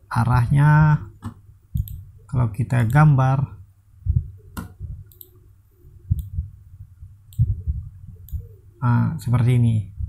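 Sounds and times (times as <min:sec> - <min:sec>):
computer mouse clicking: 0:01.2 - 0:02.0, 0:04.6 - 0:05.4, 0:08.2 - 0:08.5.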